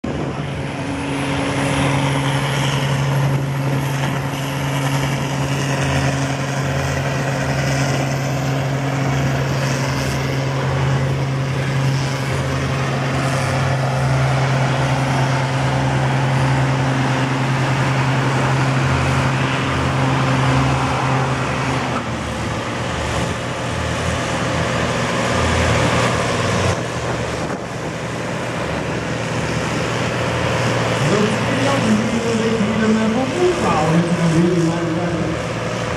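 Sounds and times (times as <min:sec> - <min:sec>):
tractor diesel engine under load: 0:00.0 - 0:35.9.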